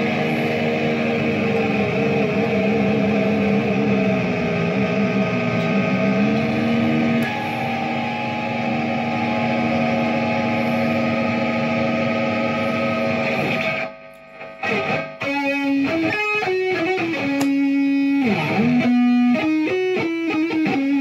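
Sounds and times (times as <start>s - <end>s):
electric guitar lead line: 0.0s - 21.0s.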